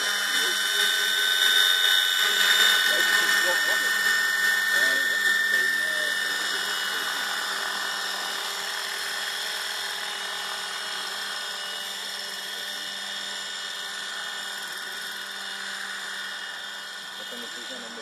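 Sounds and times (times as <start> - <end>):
model helicopter rotor whine: 0.0 - 18.0.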